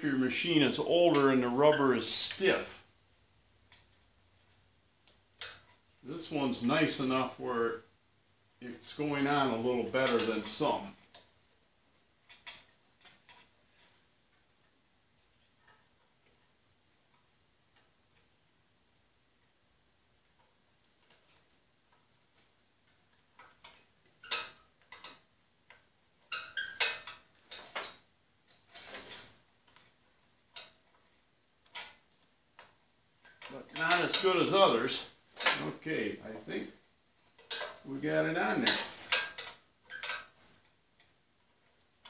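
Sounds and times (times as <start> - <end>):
rubber squeaking on metal: 26.3 - 27.1, 28.7 - 29.5, 38.4 - 40.7.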